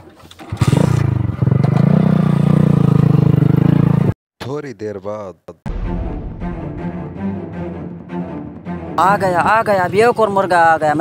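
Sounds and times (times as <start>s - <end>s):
motorcycle revving and pulling away: 0.4s - 4.1s.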